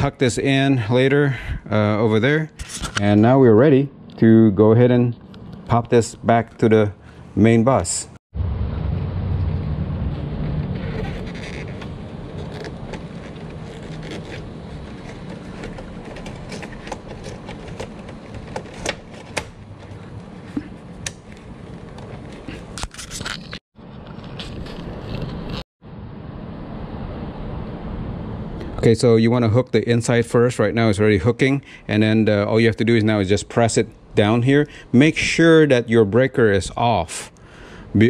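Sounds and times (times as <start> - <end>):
steady low rumble: 8.3 - 22.6, 25.8 - 30.5.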